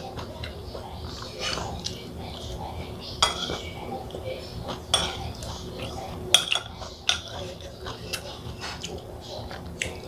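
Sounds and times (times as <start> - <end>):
chewing: 0.0 - 10.0.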